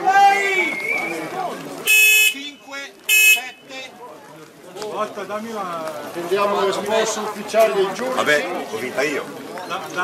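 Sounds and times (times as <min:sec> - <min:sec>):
buzzy horn blasts: 0:01.9 - 0:02.4.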